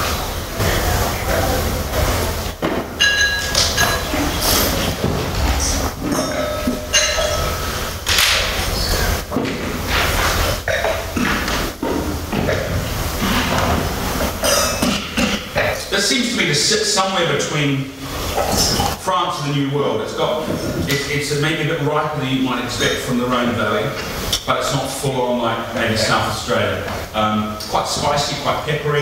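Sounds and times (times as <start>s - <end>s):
murmur of voices: 0.0s - 7.0s
glasses knocking on tables: 2.6s - 8.4s
wine glasses clinking: 3.0s - 4.4s, 6.0s - 8.6s, 14.4s - 15.0s.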